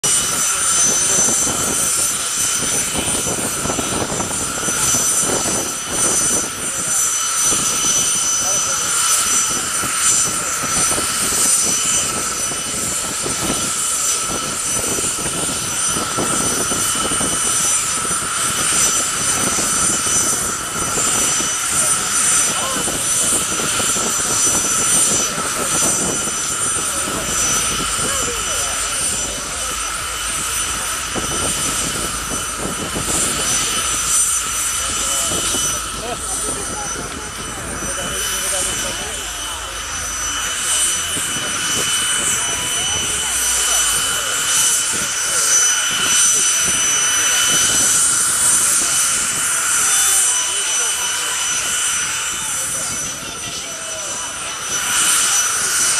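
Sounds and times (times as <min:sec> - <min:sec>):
crowd chatter: 0:00.0 - 0:55.9
jet engine idling whine: 0:00.0 - 0:55.9.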